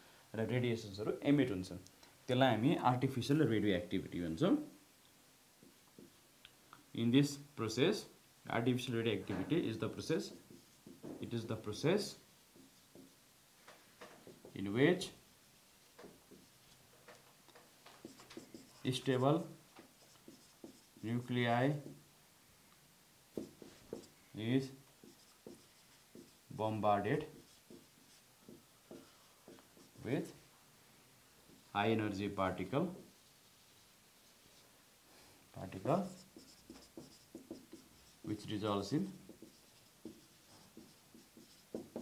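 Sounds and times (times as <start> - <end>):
marker pen tapping on whiteboard: 5.6 - 6.2, 10.2 - 11.3, 12.5 - 14.6, 15.9 - 18.8, 19.8 - 21.1, 21.8 - 22.0, 23.3 - 24.1, 25.0 - 26.4, 27.2 - 30.0, 36.2 - 38.4, 39.0 - 42.0.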